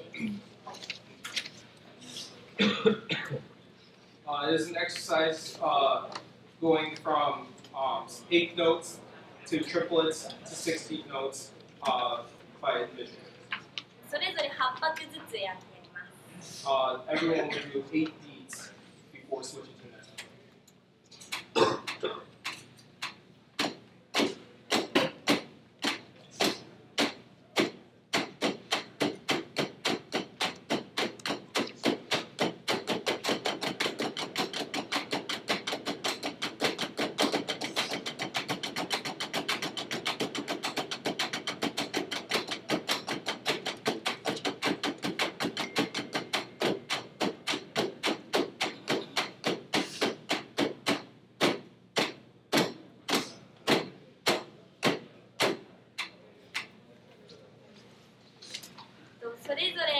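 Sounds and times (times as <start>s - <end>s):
drumsticks striking practice pads: 21.3s - 56.7s.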